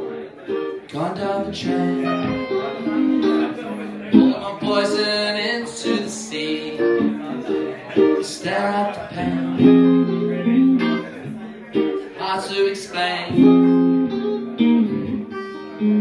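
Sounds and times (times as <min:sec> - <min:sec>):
guitar chords ringing: 0:00.0 - 0:16.0.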